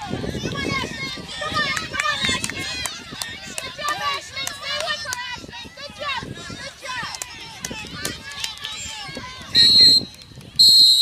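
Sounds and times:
voices calling and shouting: 0.0s - 10.8s.

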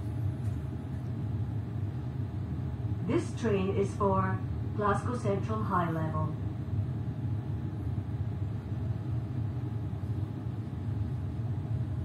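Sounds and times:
train carriage interior hum: 0.0s - 12.0s.

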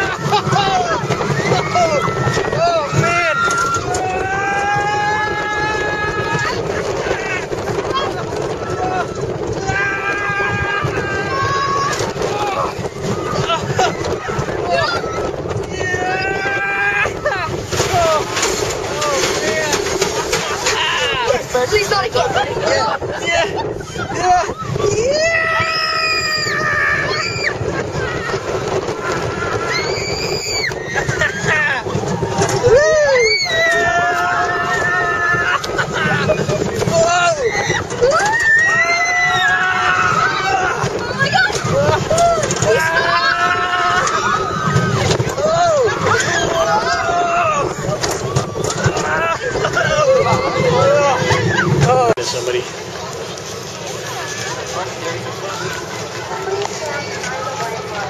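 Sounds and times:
wind noise on microphone: 0.0s - 52.2s
riders screaming and whooping: 0.0s - 58.0s.

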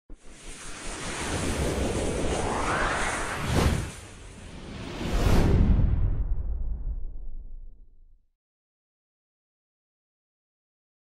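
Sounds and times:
whoosh sound effect: 0.8s - 6.1s.

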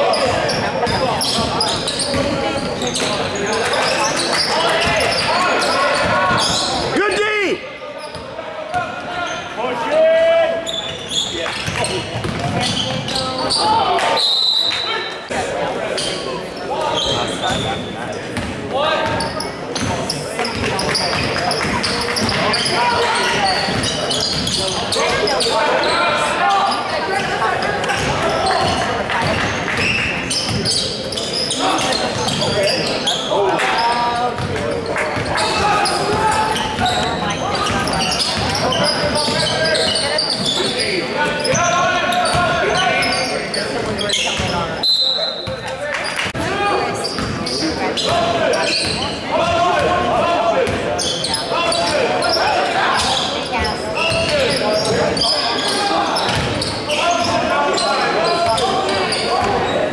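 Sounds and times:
echoing babble of voices: 0.0s - 59.9s.

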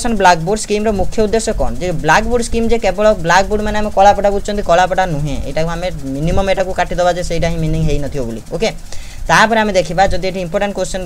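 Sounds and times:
man talking: 0.0s - 11.0s.

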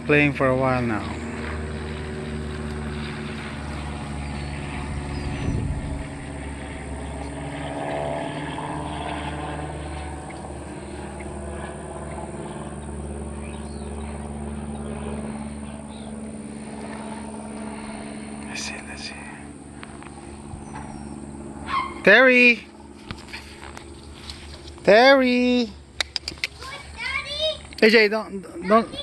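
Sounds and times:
low mechanical drone: 0.0s - 29.0s
low rumble: 0.7s - 22.0s.

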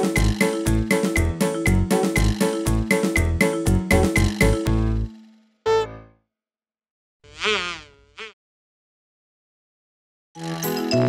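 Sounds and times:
buzzy wobbling sound effect: 5.7s - 6.1s.

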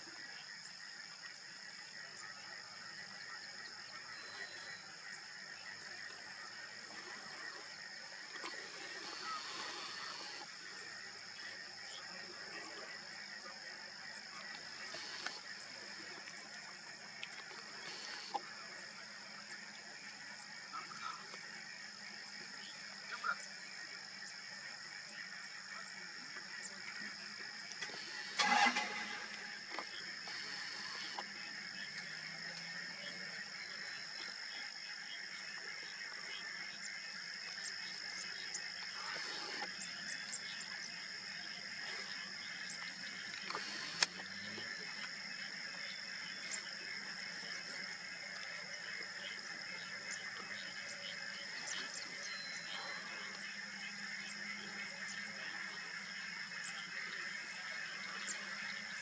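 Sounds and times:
chorus of frog-like calls: 0.0s - 59.0s.

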